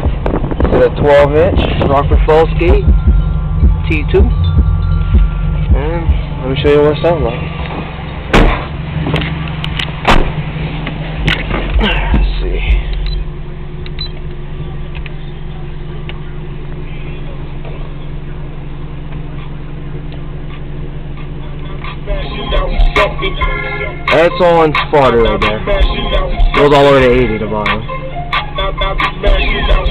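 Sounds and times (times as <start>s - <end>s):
subwoofer bass music in car: 0.0s - 29.9s
sharp knocks: 8.3s - 9.3s.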